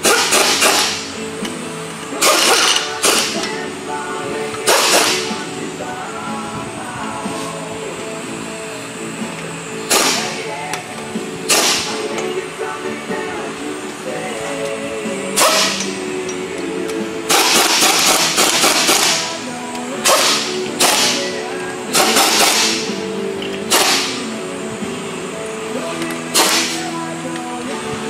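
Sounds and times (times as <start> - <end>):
power ratchet spinning bolts: 0.0 - 3.6, 4.5 - 5.3, 17.3 - 24.3
background music: 0.0 - 28.0.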